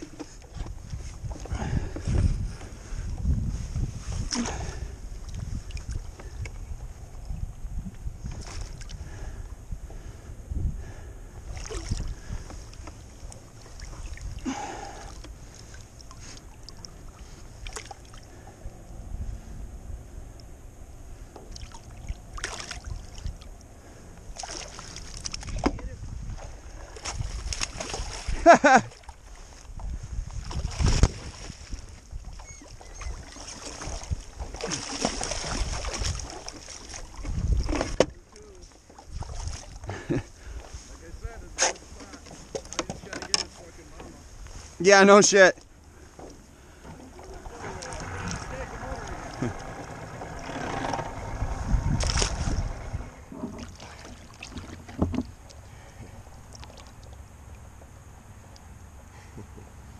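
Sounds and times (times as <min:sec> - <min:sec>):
wind rumble on microphone: 0:00.0 - 0:44.8, 0:46.0 - 0:56.5
water splashing and dripping: 0:11.5 - 0:18.3, 0:21.5 - 0:23.4, 0:32.4 - 0:38.5
landing net handling noise: 0:47.0 - 0:53.8.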